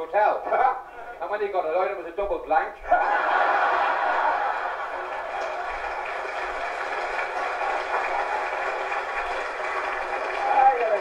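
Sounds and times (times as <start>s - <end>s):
audience laughing: 2.8s - 10.4s
audience applauding: 3.0s - 11.0s.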